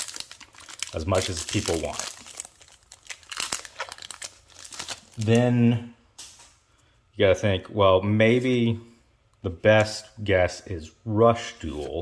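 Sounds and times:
foil wrapper tearing and crinkling: 0:00.0 - 0:05.4.

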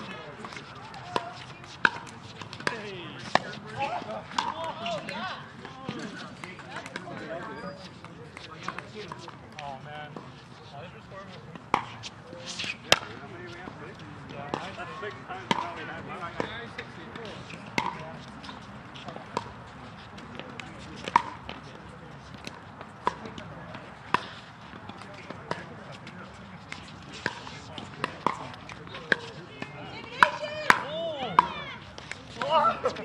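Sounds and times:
faint indistinct voices: 0:00.0 - 0:33.0.

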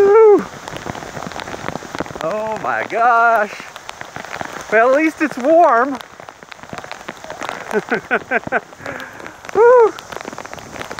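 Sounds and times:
heavy rain on road: 0:00.0 - 0:11.0.

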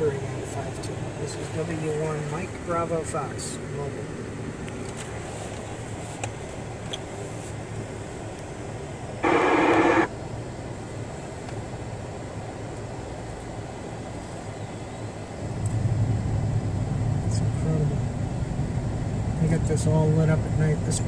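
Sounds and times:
vehicle engine and road noise: 0:00.0 - 0:21.0
radio burst: 0:09.2 - 0:10.1.

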